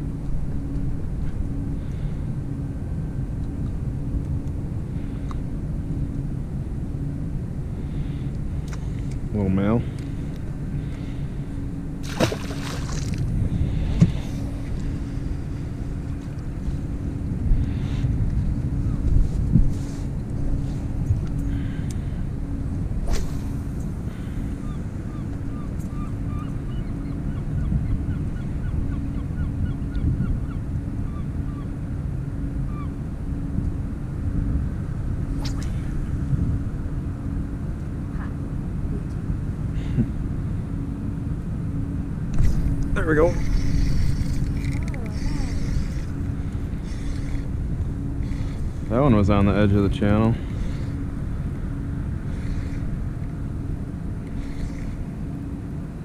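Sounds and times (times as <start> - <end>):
outboard motor running: 0.0 - 56.0.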